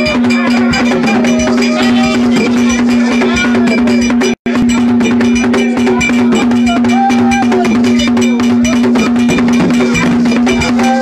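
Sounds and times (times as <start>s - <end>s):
hand drums beating fast rhythm: 0.0s - 11.0s
person singing: 5.5s - 11.0s.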